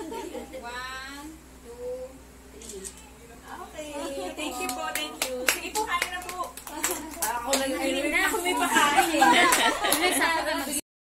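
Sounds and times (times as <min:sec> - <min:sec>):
women laughing and talking: 0:00.0 - 0:01.1, 0:03.7 - 0:10.8
sharp hand claps: 0:04.7 - 0:07.7.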